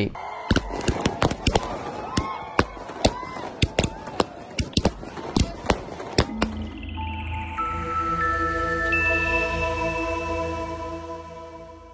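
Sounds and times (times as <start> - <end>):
fireworks bangs and crackles: 0.5 - 6.5.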